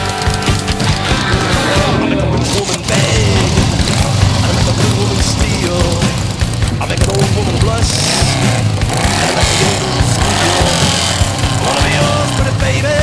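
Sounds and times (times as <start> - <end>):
motorcycle engines running: 0.0 - 13.0
rock music: 0.0 - 13.0
people's voices: 0.9 - 13.0.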